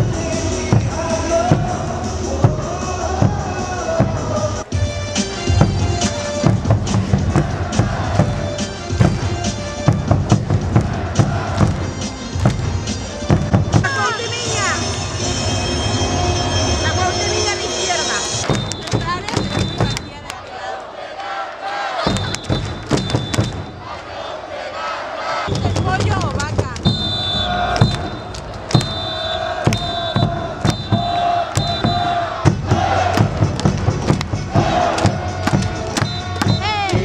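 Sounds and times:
cheer music over speakers: 0.0s - 20.4s, 25.6s - 37.0s
crowd chanting and shouting: 0.0s - 37.0s
sharp claps: 18.4s - 20.4s, 22.0s - 23.7s, 27.7s - 29.1s, 29.7s - 31.9s, 33.1s - 37.0s.

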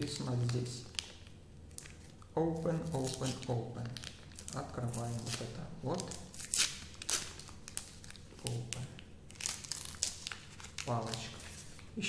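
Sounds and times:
wrapper crinkling and tearing: 0.0s - 12.0s.

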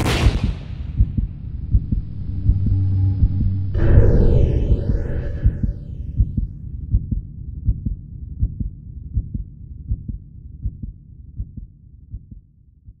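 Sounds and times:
low drone: 1.1s - 6.3s.

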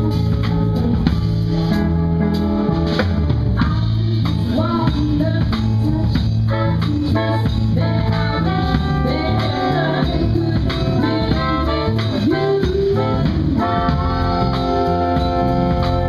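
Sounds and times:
saxophone horn section: 0.0s - 3.6s, 6.4s - 16.0s
bass line: 0.0s - 16.0s
drum kit: 0.0s - 16.0s.

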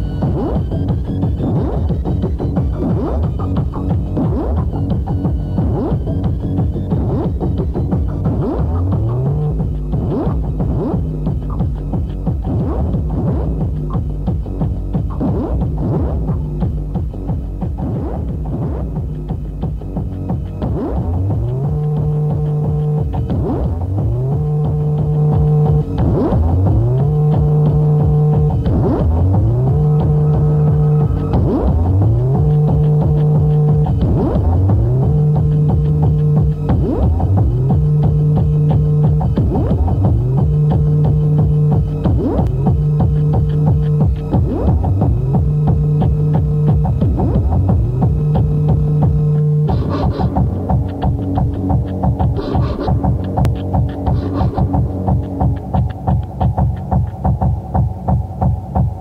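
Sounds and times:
fast driving electronic beats: 0.0s - 59.0s
sliding bass line: 0.0s - 59.0s
short high synth stabs: 24.2s - 56.5s.

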